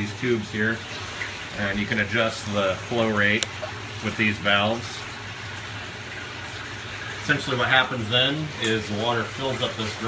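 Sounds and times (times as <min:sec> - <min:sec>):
water running onto clay pellets: 0:00.0 - 0:10.0.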